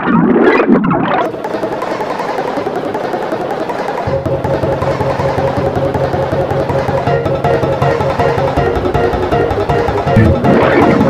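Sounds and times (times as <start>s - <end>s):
fast repeating stutter: 1.2s - 11.0s
low buzz: 2.4s - 11.0s.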